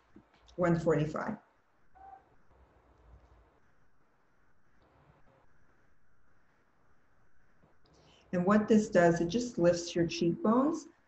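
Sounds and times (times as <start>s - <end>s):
brief faint tone: 2.0s - 2.3s.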